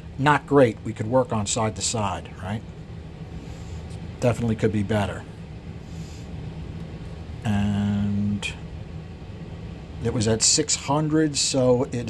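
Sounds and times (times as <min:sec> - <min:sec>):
faint low room hum: 0:00.0 - 0:12.0
man speaking: 0:00.2 - 0:02.7, 0:04.2 - 0:05.3, 0:07.4 - 0:08.6, 0:10.0 - 0:12.0.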